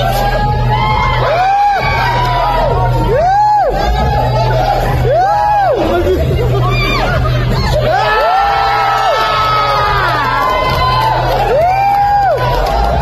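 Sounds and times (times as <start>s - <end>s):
crowd cheering and whooping: 0.0s - 13.0s
loud dance music: 0.0s - 13.0s.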